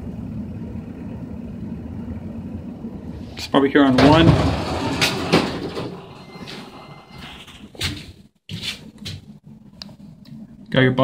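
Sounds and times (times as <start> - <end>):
elevator doors sliding open: 3.1 - 8.2.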